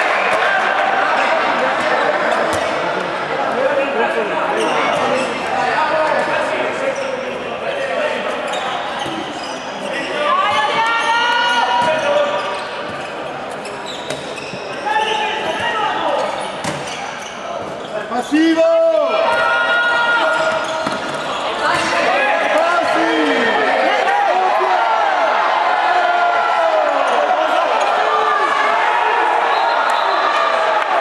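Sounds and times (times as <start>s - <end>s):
ball bouncing on hall floor: 1.7s - 2.8s, 15.4s - 17.0s
players shouting: 18.2s - 31.0s.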